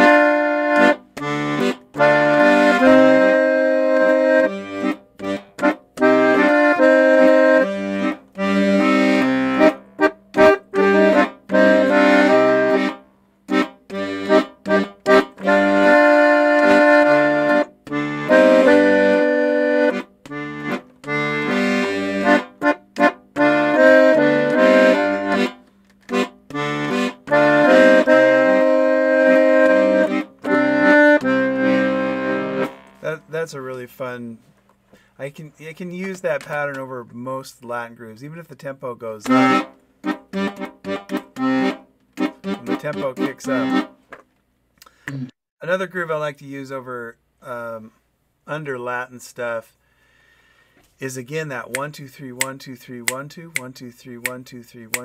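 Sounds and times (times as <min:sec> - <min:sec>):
piano accordion playing rumba: 0:00.0 - 0:33.2, 0:39.2 - 0:44.0.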